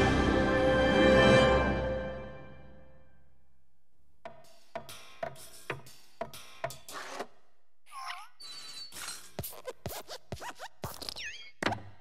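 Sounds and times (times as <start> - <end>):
squeaky metal spring creak: 8.4 - 9.4.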